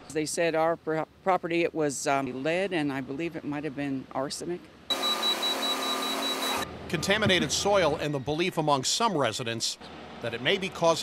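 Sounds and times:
high rapidly pulsing tone: 0:04.9 - 0:06.7.

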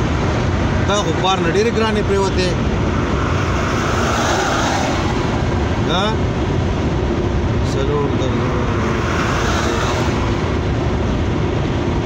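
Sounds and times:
car engine: 0:00.0 - 0:12.0
tyres rumbling on road: 0:00.0 - 0:12.0.

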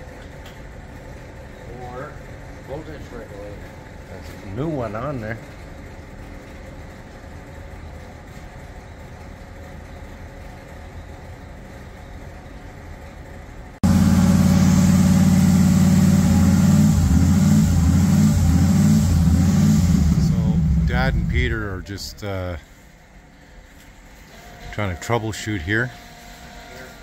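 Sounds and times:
engine running loudly: 0:13.8 - 0:22.3
faint low hum: 0:19.0 - 0:24.0.

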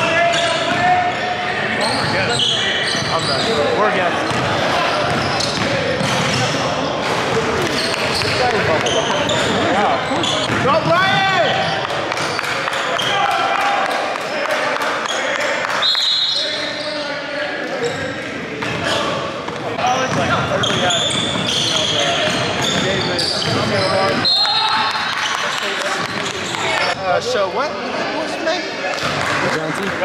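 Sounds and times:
sneakers squeaking: 0:00.0 - 0:13.2, 0:15.8 - 0:27.0
players calling out: 0:00.0 - 0:27.0
basketball bouncing: 0:04.3 - 0:04.5, 0:10.4 - 0:11.2.

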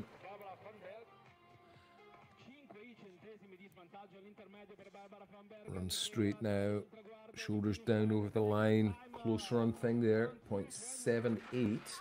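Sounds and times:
background music: 0:00.0 - 0:04.7, 0:05.6 - 0:12.0.

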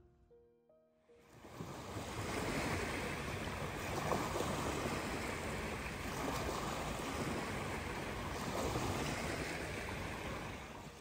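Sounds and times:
small waves washing on beach: 0:01.3 - 0:11.0.

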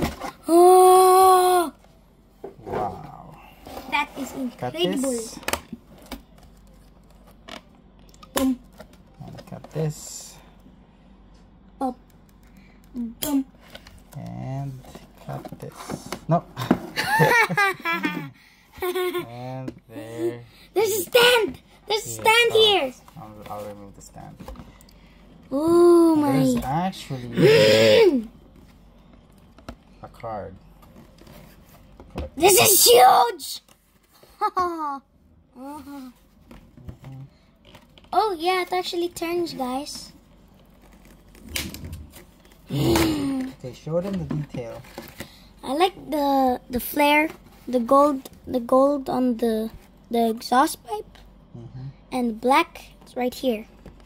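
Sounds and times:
people laughing: 0:17.0 - 0:19.2
people talking: 0:19.2 - 0:24.3, 0:25.6 - 0:28.2, 0:32.4 - 0:33.6.

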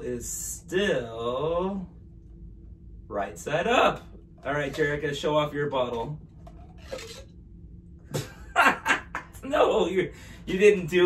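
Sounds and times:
tube scraping off bottle: 0:06.4 - 0:07.3.

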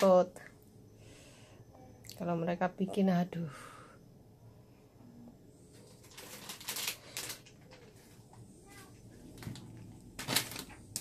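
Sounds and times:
plastic bag crinkling: 0:05.7 - 0:08.2, 0:09.3 - 0:11.0.

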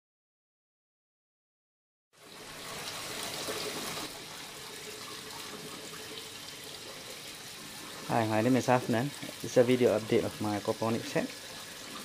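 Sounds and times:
water running and trickling: 0:02.2 - 0:12.0.

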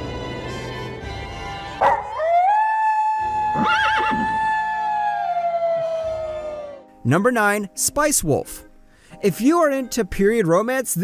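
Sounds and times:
background music: 0:00.0 - 0:11.0
wolf howling: 0:01.8 - 0:06.9.

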